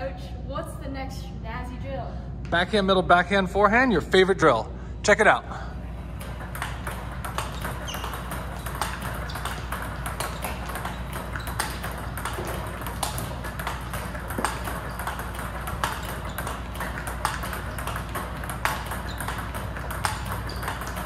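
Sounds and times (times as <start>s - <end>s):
ping-pong balls clicking: 5.9s - 21.0s
paddle hitting ball: 6.1s - 21.0s.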